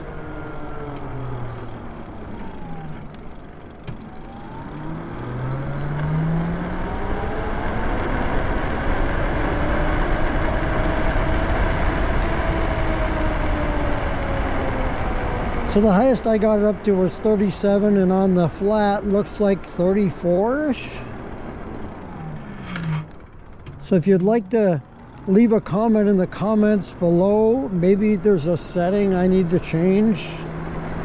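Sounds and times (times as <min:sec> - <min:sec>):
electric motor whining: 0:00.0 - 0:08.6, 0:20.6 - 0:25.5.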